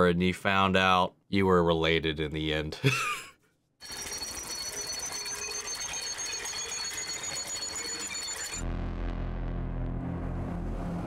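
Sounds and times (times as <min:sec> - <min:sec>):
clockwork ticking and whirring: 0:03.8 - 0:08.6
high-pitched whines: 0:03.8 - 0:11.0.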